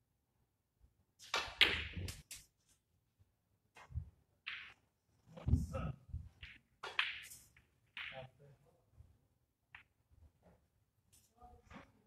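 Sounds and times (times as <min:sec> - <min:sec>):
snooker balls knocking: 0:01.3 - 0:02.2, 0:04.5 - 0:04.8, 0:06.2 - 0:08.3.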